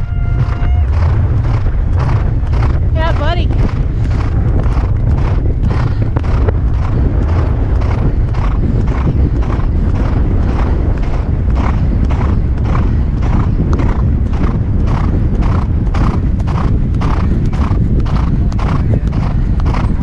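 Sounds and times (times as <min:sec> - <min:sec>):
horse galloping on turf: 0:00.0 - 0:20.0
wind rumble on microphone: 0:00.0 - 0:20.0.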